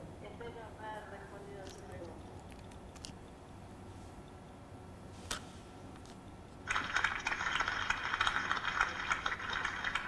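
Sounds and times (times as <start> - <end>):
audience applause: 6.6 - 10.0.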